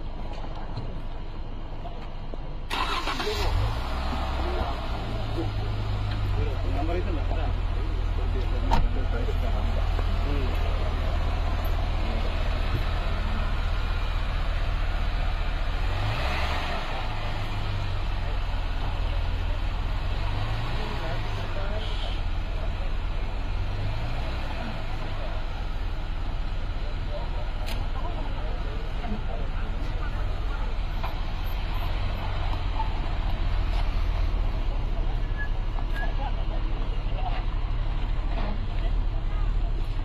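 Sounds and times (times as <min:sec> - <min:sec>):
people chattering: 0:00.0 - 0:40.0
suv engine low rumble: 0:00.0 - 0:40.0.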